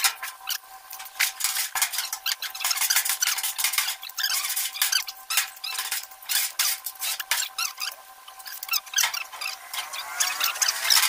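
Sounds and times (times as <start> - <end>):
blade squeaking: 1.5 - 11.0.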